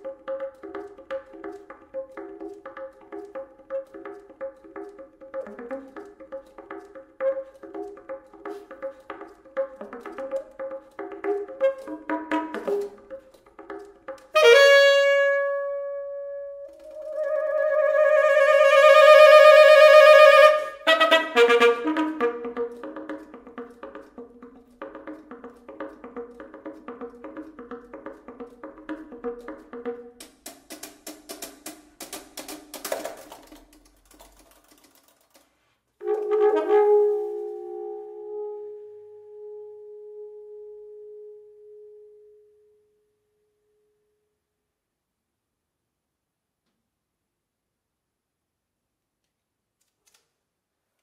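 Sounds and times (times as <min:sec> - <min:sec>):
alto saxophone playing: 0:14.3 - 0:22.8, 0:36.0 - 0:42.7
saxophone long note: 0:36.0 - 0:43.1.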